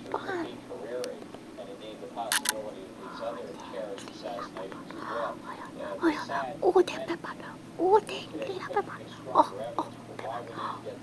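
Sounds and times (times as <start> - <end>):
television talk in background: 0.0 - 11.0
sharp clicks: 2.3 - 2.6.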